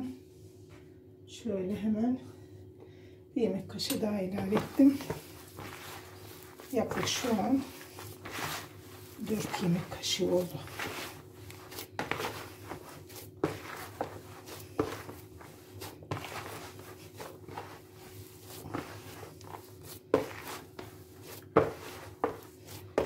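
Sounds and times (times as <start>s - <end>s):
faint steady hum: 0.0s - 23.0s
hands kneading dough: 4.0s - 23.0s.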